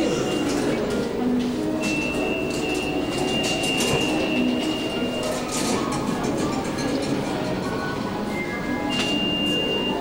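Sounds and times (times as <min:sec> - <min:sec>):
subway train through speakers: 0:00.0 - 0:10.0.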